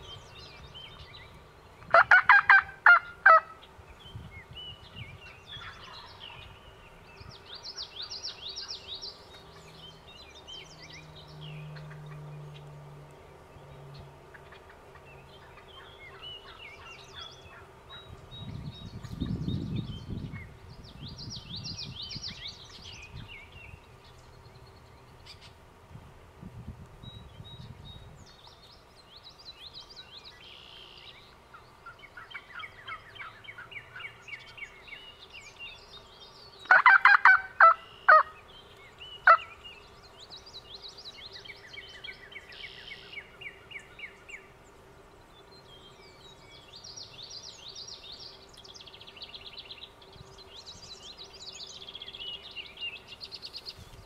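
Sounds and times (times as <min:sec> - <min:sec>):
songbirds chirping: 0:00.0 - 0:54.0
turkey gobbling: 0:01.9 - 0:03.5, 0:36.7 - 0:38.3, 0:39.2 - 0:39.4.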